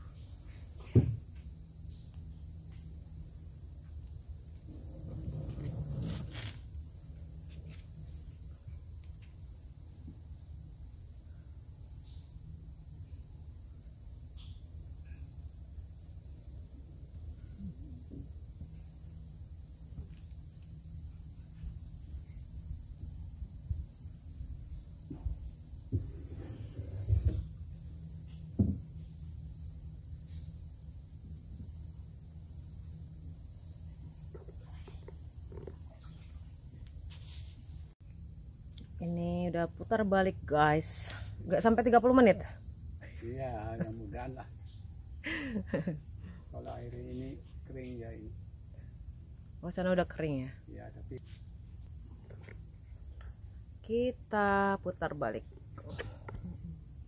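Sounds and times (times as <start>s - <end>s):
high-pitched insect chorus: 0.0s - 57.0s
low rumble: 4.6s - 6.6s.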